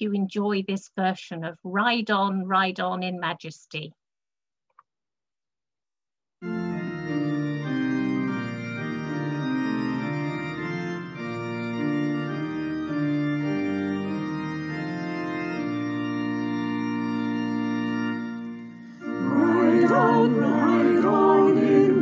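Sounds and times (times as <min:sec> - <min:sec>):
organ playing hymn chords: 0:06.4 - 0:22.0.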